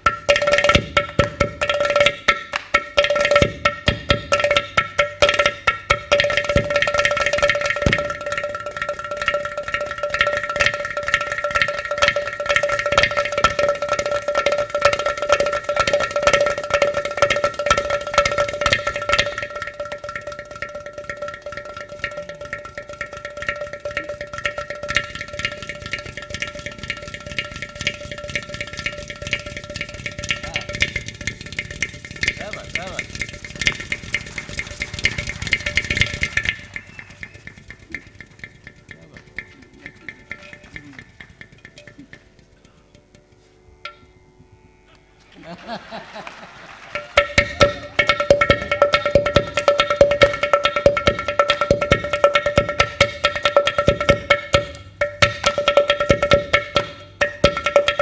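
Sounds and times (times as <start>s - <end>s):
clay pot drum strokes: 0.0s - 44.1s, 46.9s - 58.0s.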